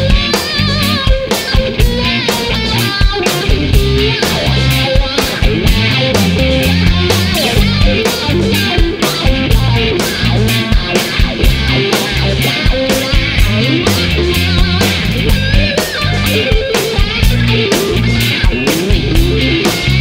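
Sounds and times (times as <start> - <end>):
drum kit beat: 0.0 - 20.0
heavy bass: 0.0 - 20.0
lead guitar with vibrato: 0.0 - 20.0.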